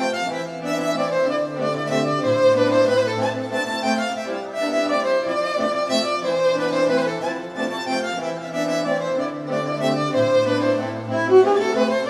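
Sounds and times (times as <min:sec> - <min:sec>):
amplified violin melody: 0:00.0 - 0:12.0.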